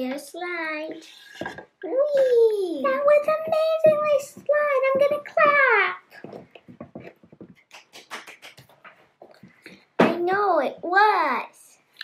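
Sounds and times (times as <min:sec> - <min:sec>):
soft clapping: 0:07.5 - 0:09.8.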